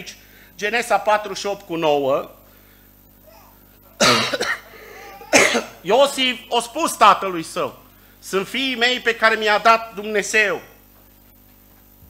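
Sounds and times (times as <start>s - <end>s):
man coughing: 3.3s - 5.8s.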